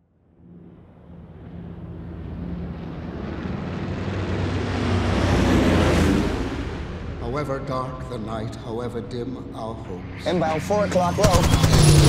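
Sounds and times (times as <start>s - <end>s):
propeller aircraft engines droning: 0.0s - 12.0s.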